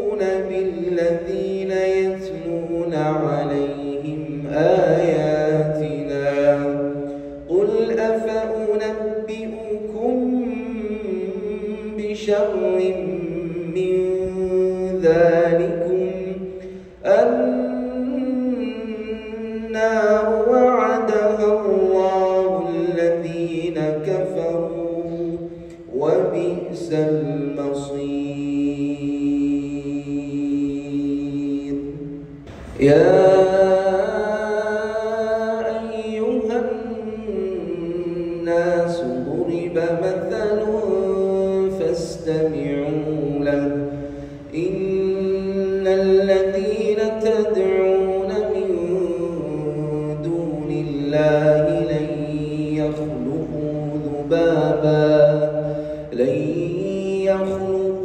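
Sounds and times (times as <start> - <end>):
man chanting melodically: 0.0 - 58.0.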